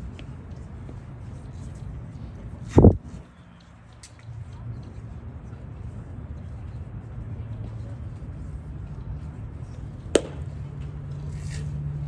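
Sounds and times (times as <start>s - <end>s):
low outdoor hum: 0.0s - 12.0s
baseball sharp crack: 10.1s - 10.8s.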